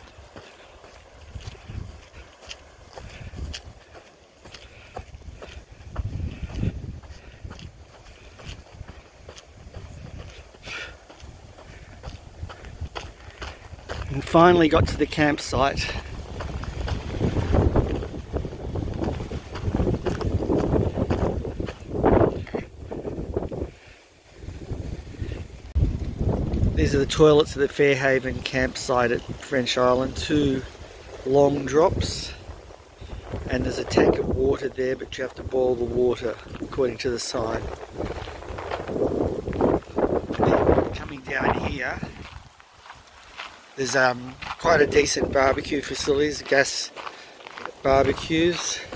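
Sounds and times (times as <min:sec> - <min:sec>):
wind buffeting microphone: 0:00.0 - 0:48.9.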